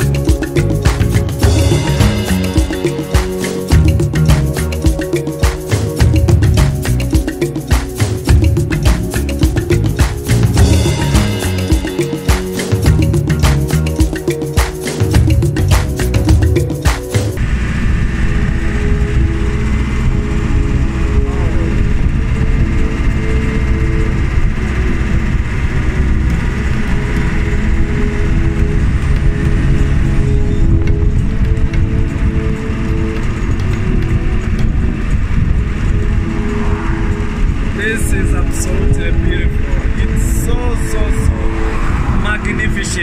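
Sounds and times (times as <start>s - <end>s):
vehicle engine and road noise: 0.0s - 43.0s
wind rumble on microphone: 17.4s - 43.0s
faint background music: 18.2s - 43.0s.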